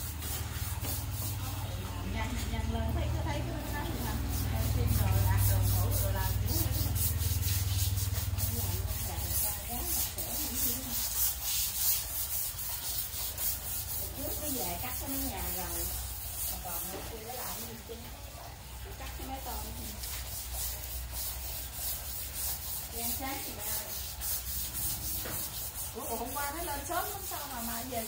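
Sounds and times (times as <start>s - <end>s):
rustling rubbing noise: 0.0s - 2.7s, 3.4s - 17.6s, 19.0s - 28.0s.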